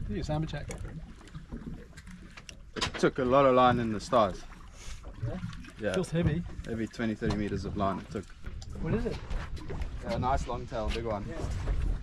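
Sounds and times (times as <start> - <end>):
wind around boat: 0.0 - 12.0.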